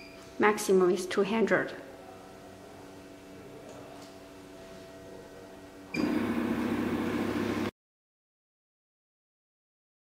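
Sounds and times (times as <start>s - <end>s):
low machine hum: 0.0s - 7.7s
loud steady whirring: 5.4s - 7.7s.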